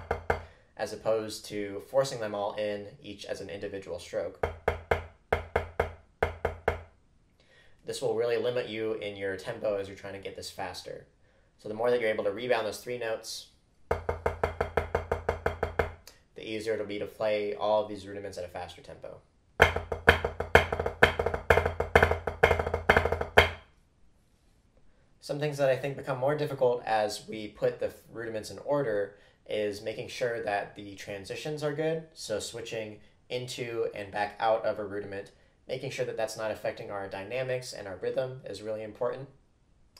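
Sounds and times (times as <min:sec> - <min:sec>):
drumsticks tapping a practice pad: 0:19.6 - 0:23.6.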